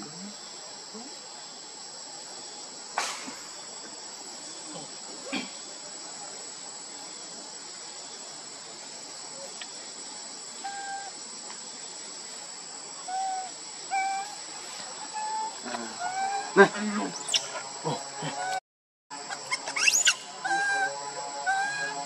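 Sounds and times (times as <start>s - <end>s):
forest insects droning: 0.0s - 22.0s.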